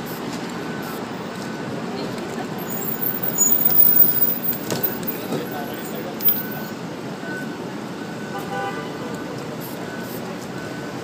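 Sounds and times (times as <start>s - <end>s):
street traffic: 0.0s - 11.0s
voices: 0.8s - 8.2s.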